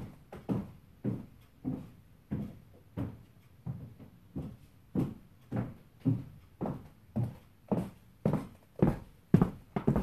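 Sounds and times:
high heels on squeaky wooden floor: 7.8s - 10.0s.

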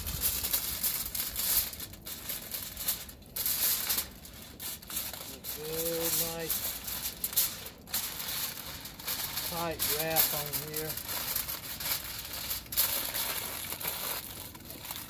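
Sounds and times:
aluminium foil crinkling: 0.0s - 15.0s.

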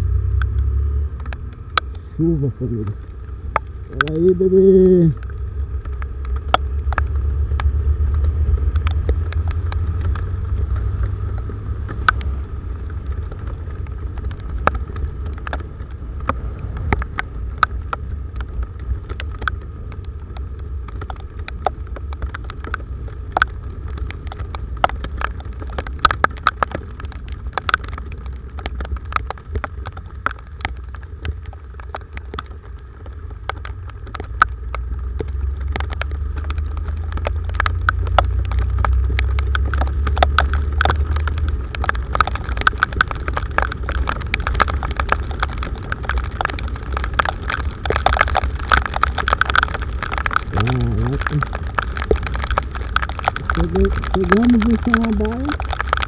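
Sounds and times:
raindrops ticking on camera: 0.0s - 56.0s
wind and motorcycle engine rumble: 0.0s - 56.0s.

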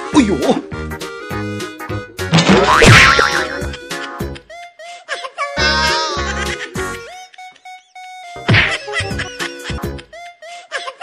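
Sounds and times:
comic background music: 0.0s - 4.5s, 5.5s - 10.4s.

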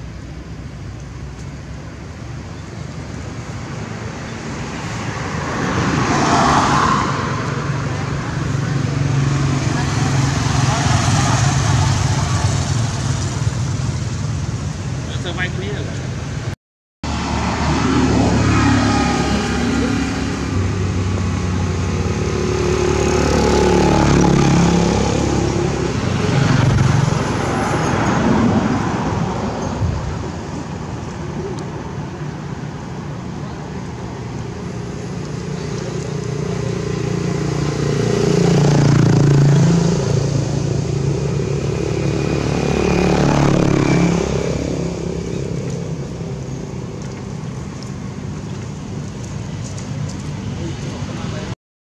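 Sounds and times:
traffic rumble: 0.0s - 51.6s.

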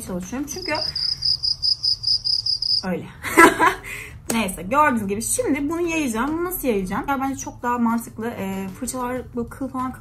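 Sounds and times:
insect chirping: 0.6s - 2.9s.

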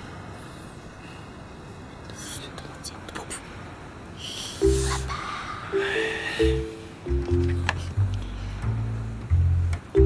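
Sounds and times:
people whispering: 2.0s - 3.6s, 4.2s - 6.6s.

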